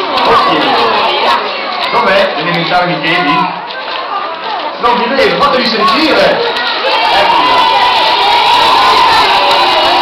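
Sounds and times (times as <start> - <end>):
children shouting and cheering: 0.0 - 4.8, 5.5 - 10.0.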